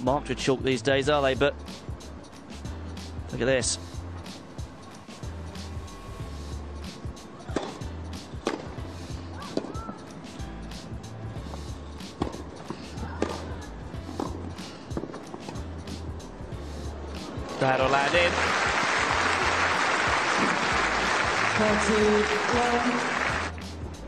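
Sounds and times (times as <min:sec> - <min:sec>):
low background music: 0:00.0 - 0:24.0
racket strikes on tennis ball: 0:07.5 - 0:08.8.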